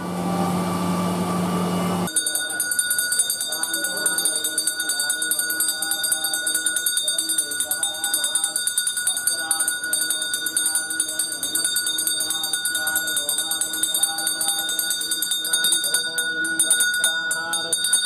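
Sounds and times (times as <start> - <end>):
hand bell ringing rapidly: 2.1 - 18.0.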